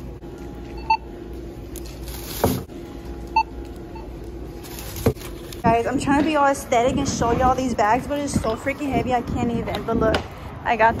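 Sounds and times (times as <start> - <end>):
low steady hum: 0.0 - 11.0
barcode scanner beep: 0.7 - 1.0.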